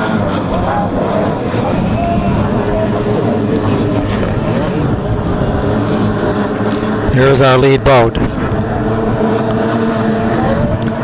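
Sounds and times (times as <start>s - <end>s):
racing outboard engine: 0.0s - 11.0s.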